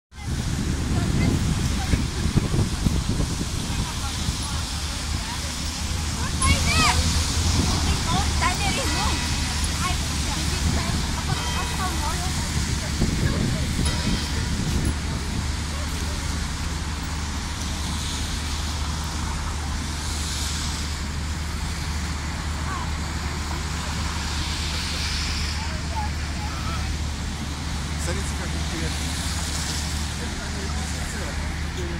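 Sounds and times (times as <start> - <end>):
low rumble of traffic: 0.1 - 31.9
crowd voices: 0.2 - 31.9.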